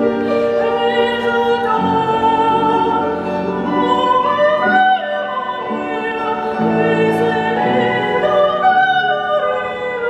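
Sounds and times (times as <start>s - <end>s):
piano accompaniment: 0.0s - 10.0s
soprano singing: 0.0s - 10.0s.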